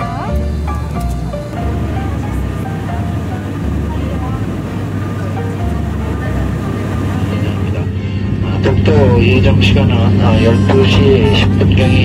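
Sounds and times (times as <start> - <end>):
repeated bass notes: 0.0 - 12.0
pop song: 10.2 - 12.0.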